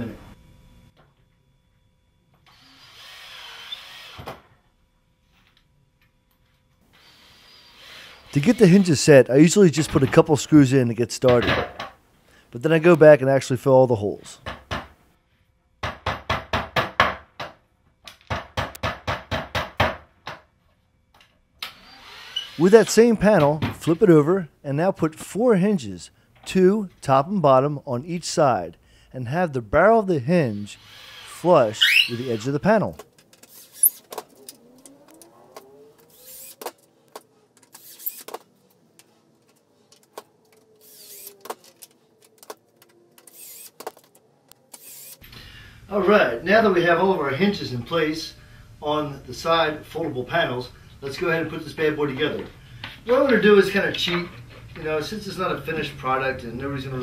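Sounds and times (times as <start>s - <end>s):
cordless drill driving screws: 2.5s - 4.3s, 7.0s - 8.8s, 21.6s - 22.6s, 30.7s - 32.7s, 33.4s - 38.4s, 40.1s - 42.6s, 43.2s - 44.1s, 44.7s - 45.2s.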